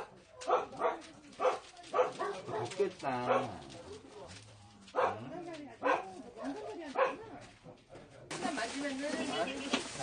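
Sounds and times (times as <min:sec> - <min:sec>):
dog barking: 0:00.0 - 0:04.3, 0:04.9 - 0:07.4.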